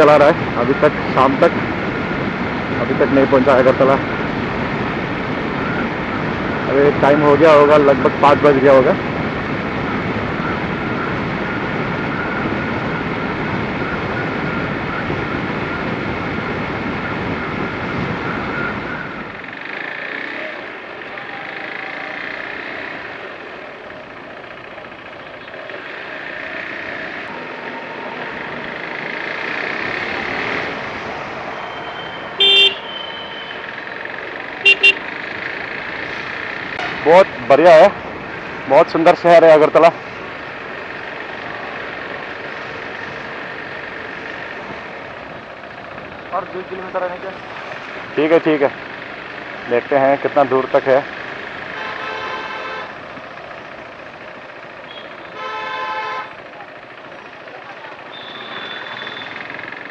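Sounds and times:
motorcycle engine riding: 0.0 - 59.9
road noise: 0.0 - 59.9
vehicle horn: 31.6 - 33.6, 34.6 - 35.1, 51.7 - 53.0, 54.9 - 56.5, 58.1 - 59.4.

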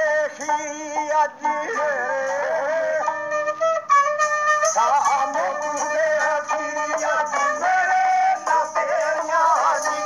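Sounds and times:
reedy wind instrument melody: 0.0 - 10.0
drum strokes: 4.2 - 10.0.

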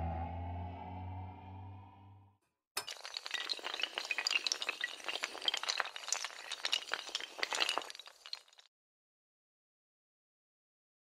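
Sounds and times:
glass shattering: 2.8 - 8.7
tinkling glass shards: 2.8 - 8.7.

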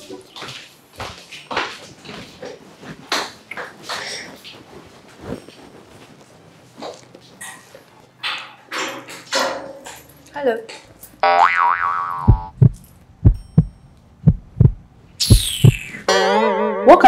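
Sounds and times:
springy boing: 11.2 - 12.6
low thuds: 12.2 - 16.0
falling whistle: 15.2 - 16.0.

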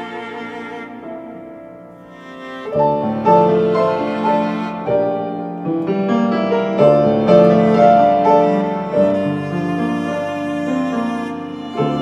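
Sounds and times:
slow quiet piano improvisation: 0.0 - 12.0.

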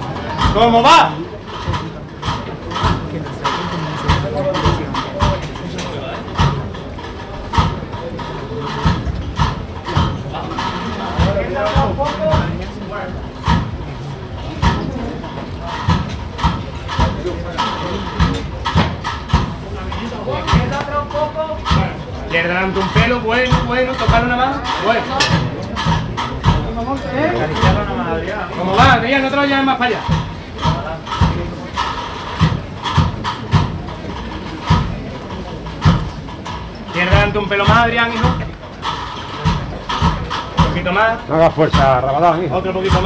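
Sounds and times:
indistinct crowd talk: 0.0 - 43.0.

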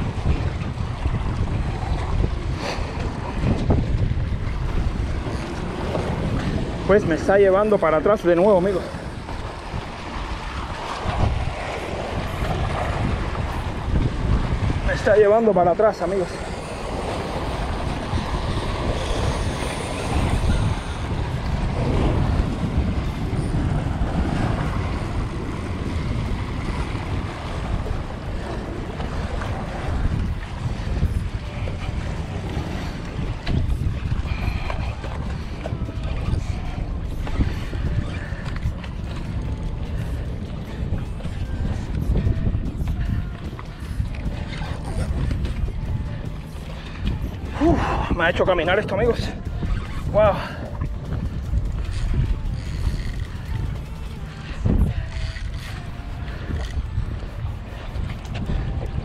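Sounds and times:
surf washing against rocks: 0.0 - 59.0
wind buffeting microphone: 0.0 - 59.0.

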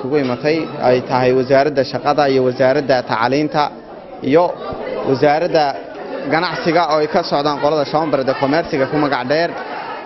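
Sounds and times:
man speaking: 0.0 - 9.6.

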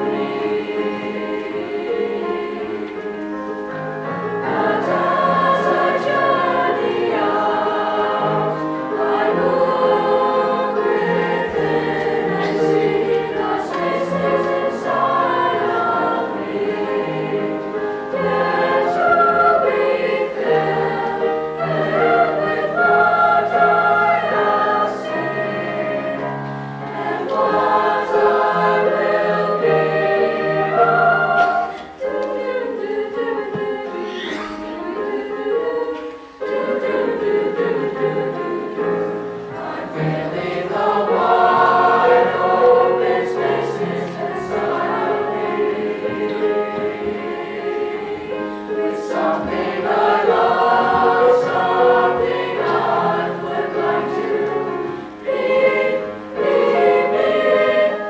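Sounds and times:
children's choir singing: 0.0 - 58.0.

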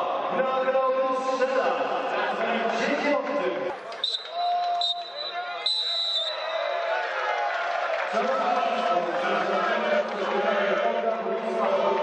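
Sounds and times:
crowd shouting and chanting: 0.0 - 12.0
whistle blasts: 4.0 - 6.9.

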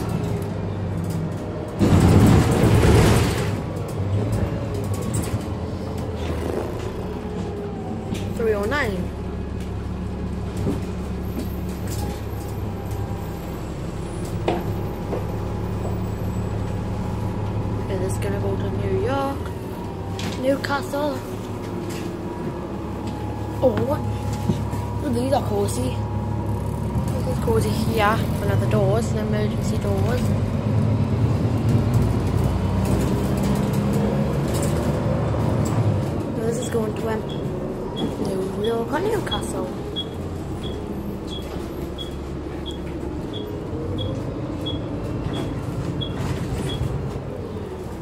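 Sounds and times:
bus engine idling: 0.0 - 48.0.

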